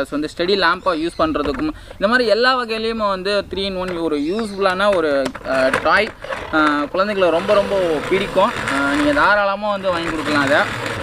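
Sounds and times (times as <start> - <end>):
man talking: 0.0 - 10.8.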